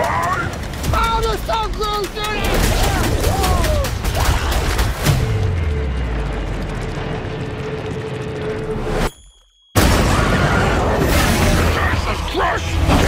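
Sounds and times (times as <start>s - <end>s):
rushing rumble: 0.0s - 9.0s.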